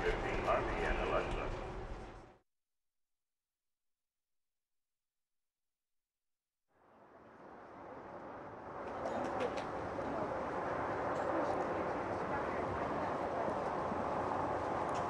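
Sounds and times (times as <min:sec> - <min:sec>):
distant indistinct voices: 0:00.0 - 0:01.7, 0:08.8 - 0:15.0.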